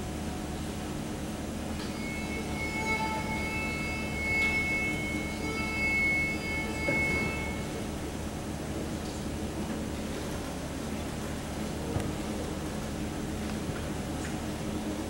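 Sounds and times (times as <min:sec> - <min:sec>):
steady background hum: 0:00.0 - 0:15.0
band instruments sustained high notes: 0:01.5 - 0:08.7.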